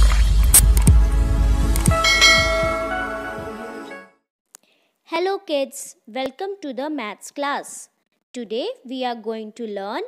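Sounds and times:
bright bell-like chime: 0:02.0 - 0:03.2.

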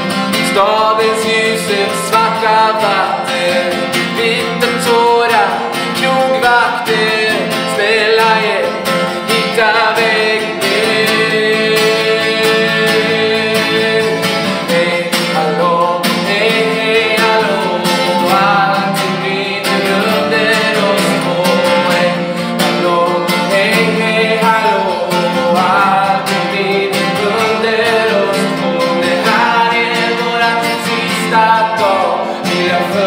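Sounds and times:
man singing: 0:00.0 - 0:33.0
strummed acoustic guitar: 0:00.0 - 0:33.0.

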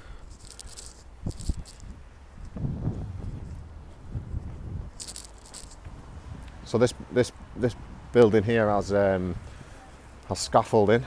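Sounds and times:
microphone rustling: 0:00.2 - 0:06.4.

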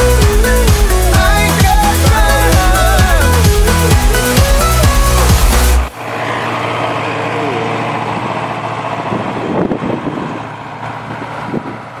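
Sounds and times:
tractor diesel engine under load: 0:00.0 - 0:12.0.

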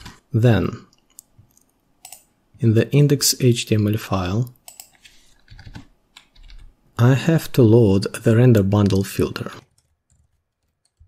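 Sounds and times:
computer keyboard keystrokes: 0:02.0 - 0:02.3, 0:04.6 - 0:06.7, 0:09.7 - 0:11.0.

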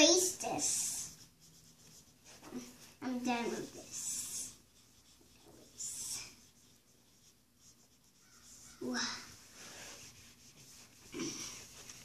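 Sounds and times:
eraser rubbing on whiteboard: 0:00.0 - 0:12.0.

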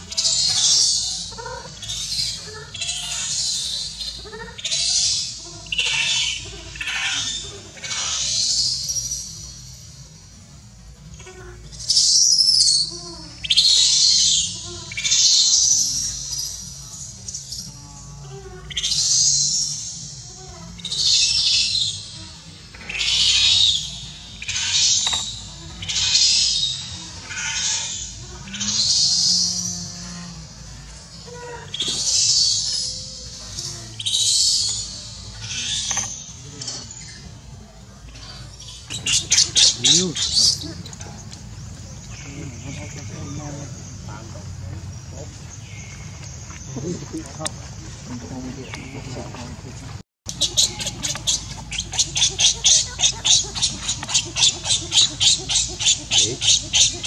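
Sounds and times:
baby monkey screaming: 0:00.0 - 0:09.4, 0:11.2 - 0:16.7, 0:18.2 - 0:30.0, 0:31.2 - 0:37.2, 0:38.1 - 0:41.0, 0:50.3 - 0:57.0.

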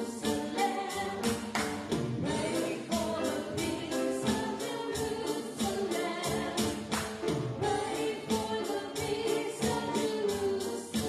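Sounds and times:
piano: 0:00.0 - 0:11.0
woman singing into a microphone: 0:02.2 - 0:06.8.

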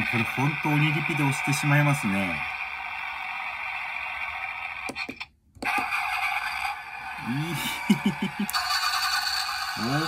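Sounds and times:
tinny car engine sound effect: 0:00.0 - 0:10.0
man laughing: 0:07.2 - 0:08.6.

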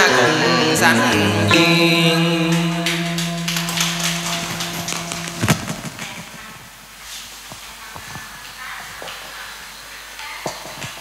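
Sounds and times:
held music chord: 0:01.1 - 0:06.4.

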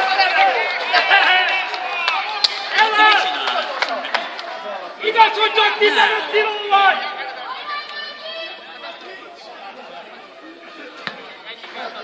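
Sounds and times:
distant men talking and calling: 0:00.0 - 0:12.0.

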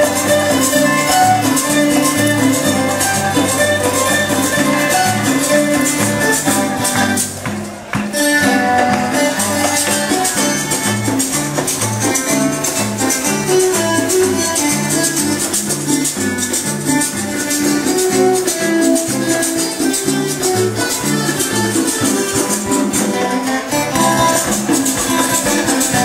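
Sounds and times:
plucked string instruments melody: 0:00.0 - 0:26.0
shaker beat: 0:00.0 - 0:26.0.

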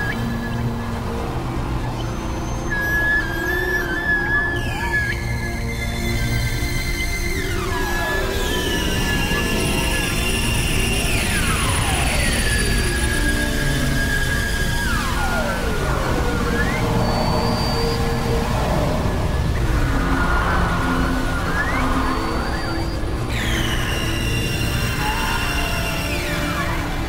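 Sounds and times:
synthesizer drone tones: 0:00.0 - 0:27.0
low rumbling noise: 0:14.6 - 0:27.0.

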